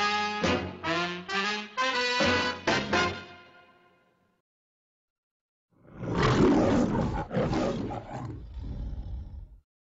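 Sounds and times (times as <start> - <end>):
lion growling: 5.8 - 9.6
lion roaring: 5.8 - 9.6.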